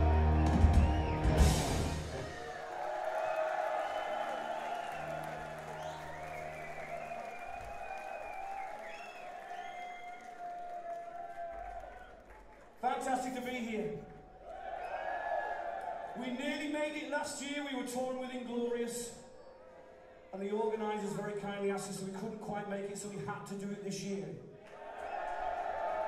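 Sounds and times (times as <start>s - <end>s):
rock band playing: 0.0s - 2.3s
audience cheering and shouting: 0.0s - 12.3s, 14.4s - 16.4s, 24.8s - 26.0s
cymbal crash: 1.4s - 2.3s.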